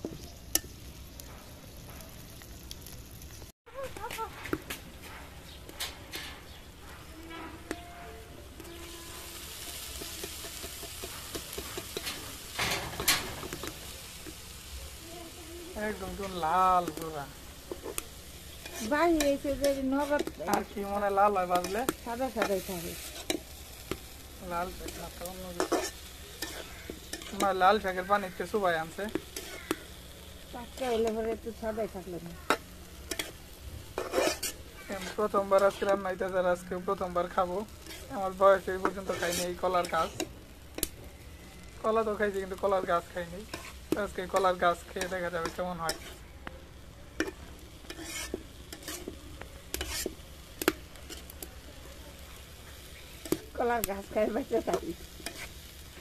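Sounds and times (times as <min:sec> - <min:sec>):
food sizzling in a pan: 0:00.0 - 0:56.0
spatula scraping vegetables in wok: 0:03.9 - 0:14.7, 0:15.7 - 0:56.0.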